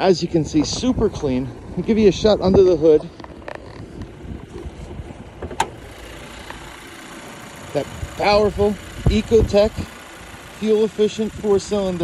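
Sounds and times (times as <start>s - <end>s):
low steady rumble: 0.0s - 12.0s
car hood latch click: 5.4s - 5.8s.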